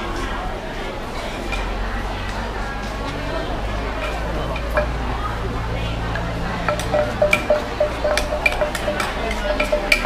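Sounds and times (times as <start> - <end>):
market crowd noise: 0.0 - 10.0
pestle pounding in mortar: 6.6 - 10.0.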